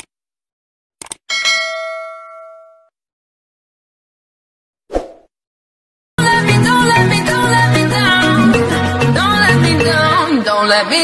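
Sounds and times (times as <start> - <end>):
bright bell ding: 1.3 - 2.9.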